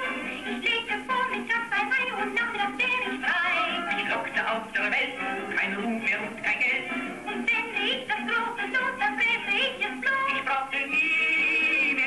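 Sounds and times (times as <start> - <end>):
music: 0.0 - 12.0
person singing: 0.0 - 12.0.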